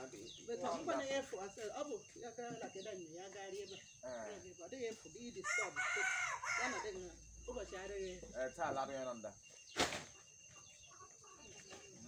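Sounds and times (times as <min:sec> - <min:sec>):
rooster crowing: 0:05.4 - 0:07.0.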